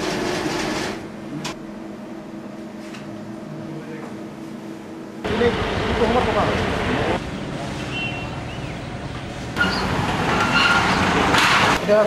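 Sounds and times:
road traffic noise: 5.2s - 12.0s.

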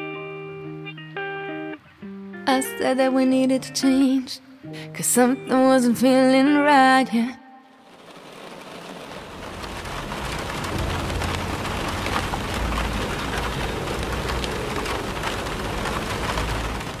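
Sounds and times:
steady rain patter: 7.7s - 17.0s
low rumble: 9.2s - 17.0s.

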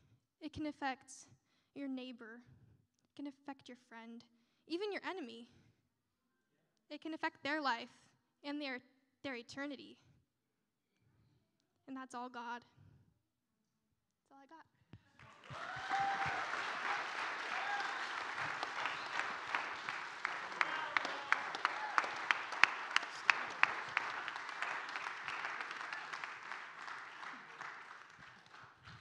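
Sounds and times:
loud clapping close to microphone: 15.0s - 29.0s
people whooping: 15.2s - 28.6s
crowd applauding: 15.2s - 29.0s.

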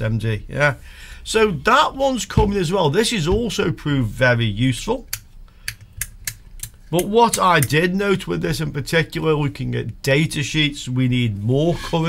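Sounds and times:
toggle switches clicking: 5.1s - 7.8s.

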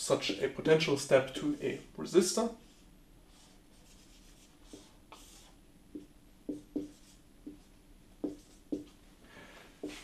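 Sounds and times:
marker drawing on whiteboard: 2.6s - 9.0s, 9.8s - 10.0s.

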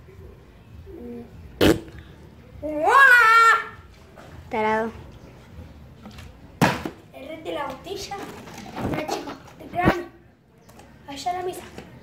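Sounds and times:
plastic bottle thud on concrete: 6.1s - 7.1s.

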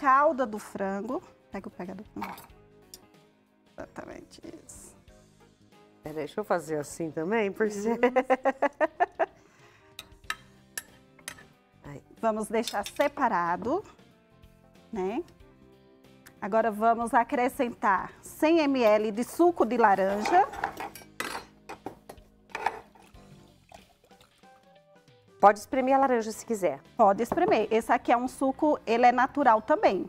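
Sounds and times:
metal tongs clinking on glass dish: 10.0s - 11.5s, 12.6s - 13.2s, 20.2s - 21.6s
glass bottle clinking on saucepan: 20.2s - 23.0s
juice pouring: 22.8s - 24.8s.

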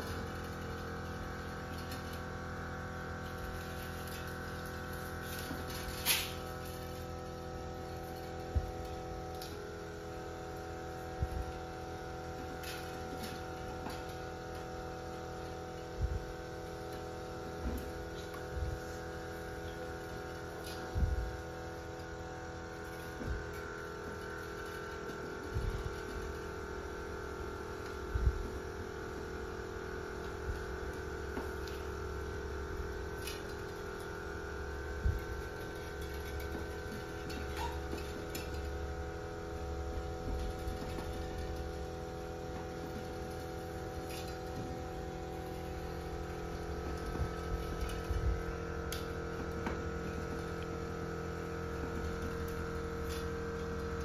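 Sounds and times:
steady tonal hum: 0.0s - 54.0s.

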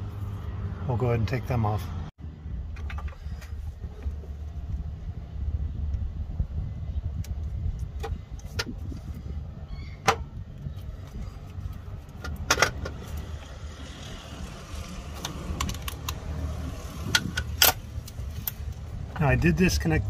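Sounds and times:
steady low rumble: 1.8s - 20.0s.

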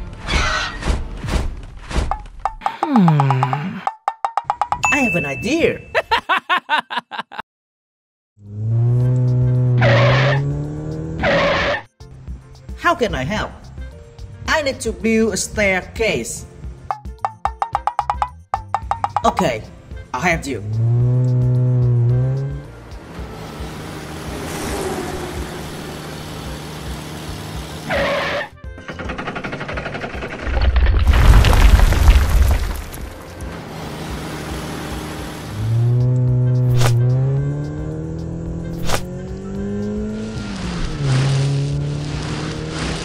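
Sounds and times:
race car engine revving: 8.4s - 11.9s, 20.6s - 30.4s, 33.3s - 43.0s
background music: 12.0s - 30.6s, 32.7s - 41.9s
car engine running: 20.6s - 31.1s, 32.2s - 43.0s.

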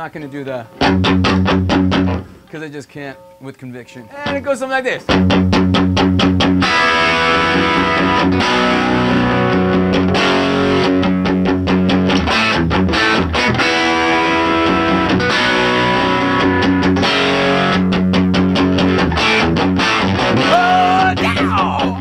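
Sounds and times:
distorted electric guitar riff: 0.4s - 2.5s, 5.1s - 22.0s.

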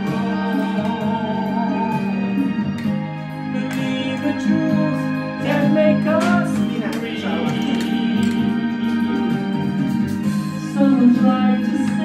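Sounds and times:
person singing: 0.0s - 9.7s, 10.4s - 12.0s
organ-like chords: 0.0s - 12.0s.

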